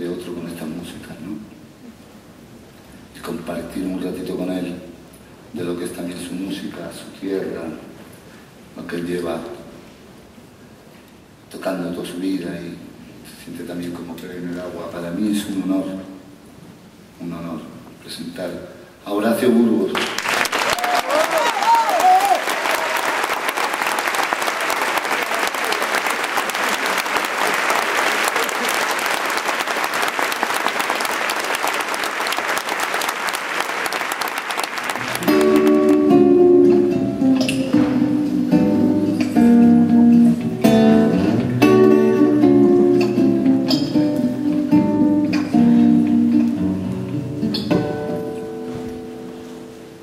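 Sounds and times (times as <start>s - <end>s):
audience applauding: 19.9s - 36.3s
acoustic guitar plucked notes: 35.0s - 50.0s.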